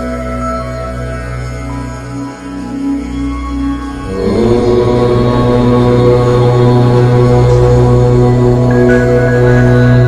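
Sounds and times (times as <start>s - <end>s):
chanted om: 0.0s - 10.0s
meditation music drone: 0.0s - 10.0s.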